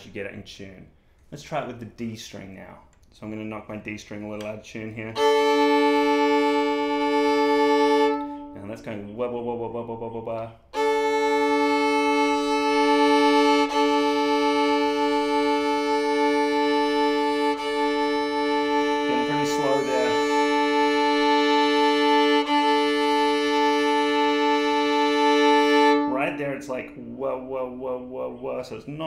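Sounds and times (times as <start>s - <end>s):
violin bowed sustained fifth: 5.0s - 9.2s, 10.7s - 28.8s.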